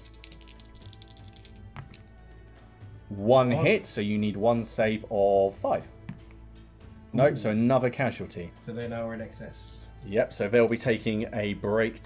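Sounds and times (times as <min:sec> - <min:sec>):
dice rattling in tray: 0:00.0 - 0:02.2
quiet background music: 0:00.0 - 0:12.0.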